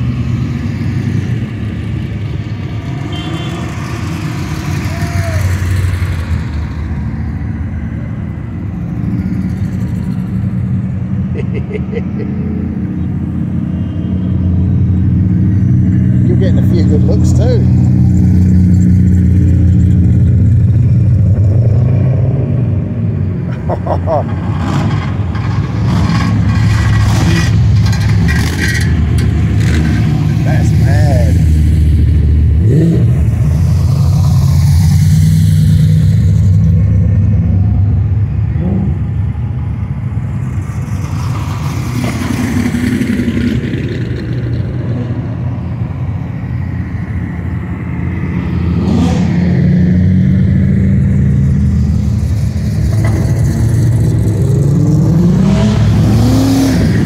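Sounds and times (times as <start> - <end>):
car engine revving: 48.2 - 57.0.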